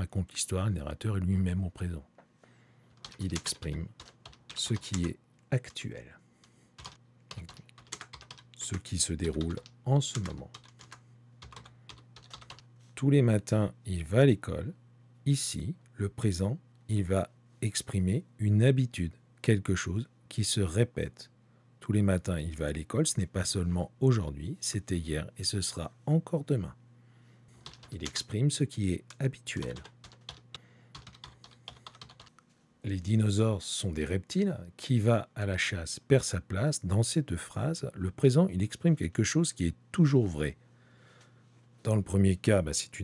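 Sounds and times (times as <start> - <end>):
computer keyboard typing: 3.0 - 5.8, 6.8 - 12.7, 27.6 - 28.3, 29.1 - 32.4.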